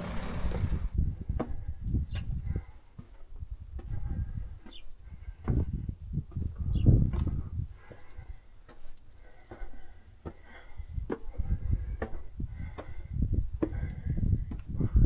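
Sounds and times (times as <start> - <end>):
footsteps on concrete steps: 0.0 - 15.0.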